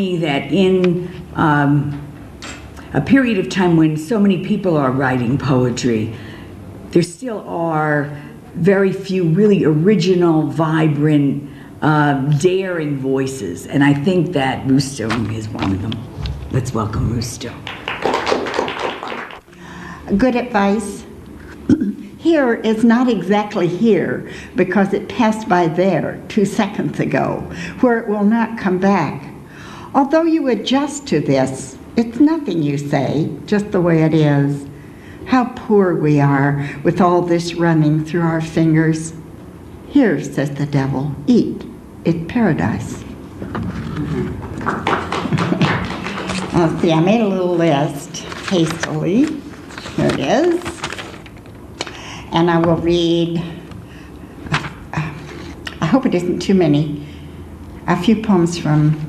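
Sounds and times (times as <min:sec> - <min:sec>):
audience applauding: 0:17.6 - 0:19.5, 0:44.1 - 0:46.5
paper rustling: 0:47.6 - 0:52.0.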